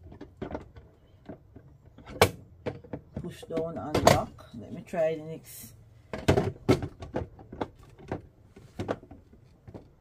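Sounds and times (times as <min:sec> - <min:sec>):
plastic lid knocking and clicking: 0:06.1 - 0:10.0.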